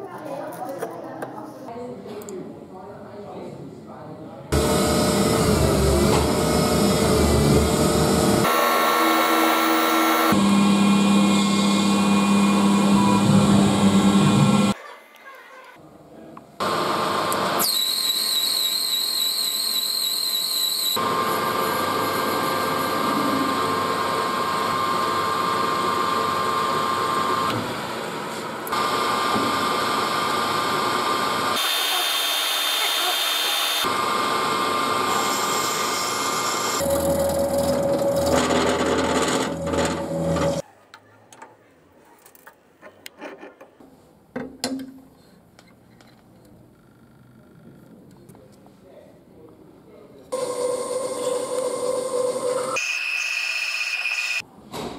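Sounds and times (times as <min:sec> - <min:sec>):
lathe cutting noise: 0:04.5 - 0:14.8, 0:16.6 - 0:40.6, 0:50.4 - 0:54.4
lathe machine hum and whine: 0:04.6 - 0:14.8, 0:16.6 - 0:40.6, 0:50.4 - 0:54.4.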